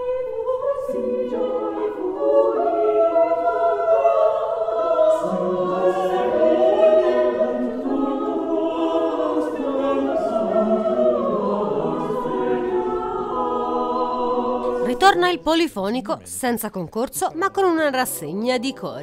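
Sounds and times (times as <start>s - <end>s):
choir singing a cappella: 0.0s - 15.7s.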